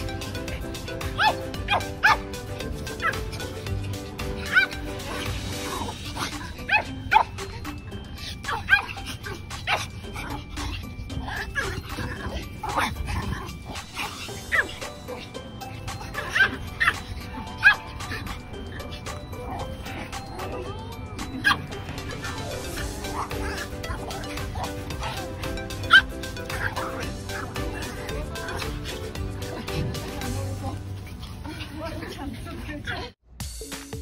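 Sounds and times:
background music: 0.0s - 34.0s
small dog yapping: 1.2s - 2.2s, 2.9s - 3.6s, 4.4s - 7.4s, 16.0s - 18.2s, 25.9s - 29.0s.

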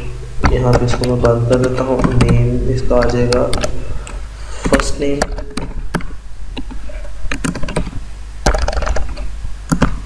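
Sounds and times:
computer keyboard typing: 0.6s - 6.1s, 7.3s - 10.0s.

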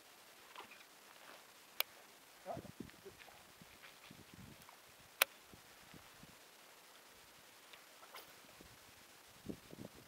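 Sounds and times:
rustling: 0.0s - 9.4s.

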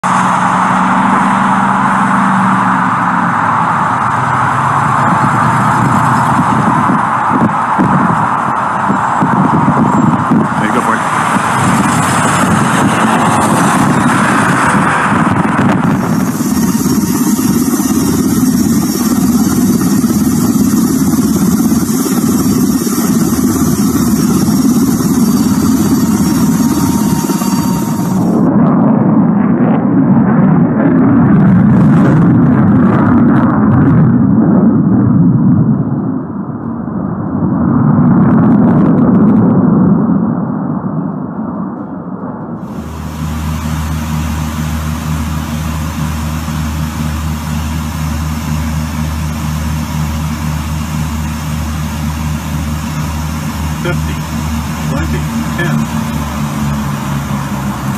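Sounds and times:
aircraft engines drone in cockpit: 0.0s - 57.9s
fighter jet passing: 0.0s - 57.9s
helicopter rotor and engine noise: 0.0s - 57.9s.

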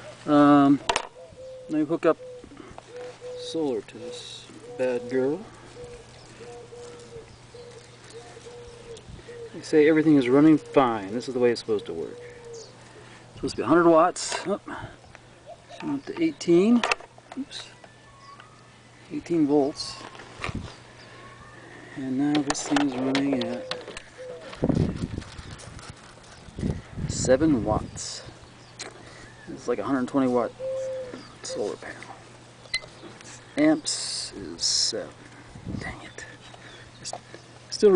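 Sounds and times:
dove cooing: 0.0s - 13.2s, 20.8s - 25.0s, 30.4s - 32.3s.

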